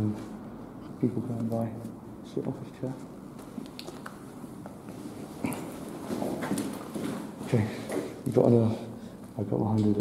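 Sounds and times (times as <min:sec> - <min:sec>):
shuffling footsteps: 0:04.6 - 0:08.2.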